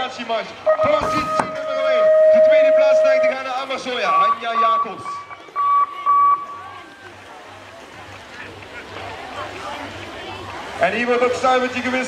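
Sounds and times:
faint background voices: 0.0s - 12.0s
short electronic beep: 4.1s - 6.8s.

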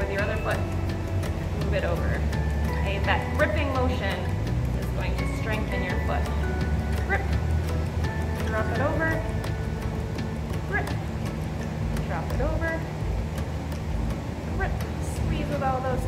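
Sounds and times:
wavering melody line: 0.0s - 15.5s
sustained low notes: 0.0s - 16.0s.

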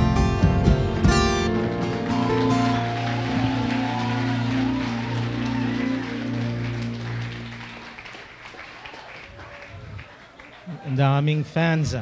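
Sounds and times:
light applause: 0.0s - 12.0s.

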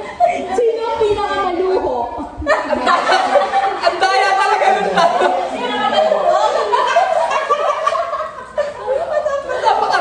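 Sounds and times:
people laughing and shrieking: 1.9s - 10.0s.

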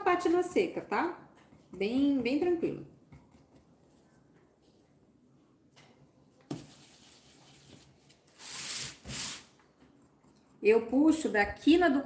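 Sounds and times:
paintbrush bristles rubbing surface: 6.5s - 9.5s.

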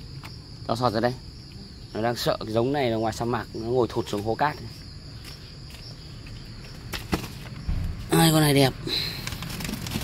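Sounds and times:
cricket trill: 0.0s - 10.0s
low rumble: 7.7s - 9.4s.

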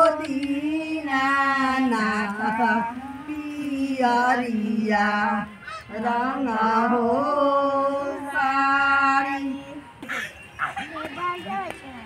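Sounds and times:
women singing folk song: 0.0s - 10.0s
several voices talking: 9.4s - 12.0s.

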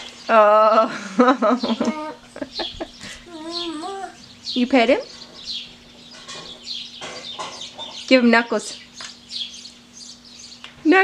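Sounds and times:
birds chirping: 0.0s - 11.0s
bird clucking calls: 1.6s - 8.1s.

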